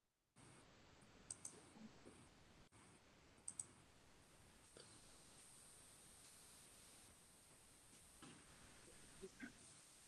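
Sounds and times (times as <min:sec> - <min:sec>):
soft computer mouse clicks: 0:01.3 - 0:01.6, 0:03.4 - 0:03.8
faint hiss: 0:01.3 - 0:10.0.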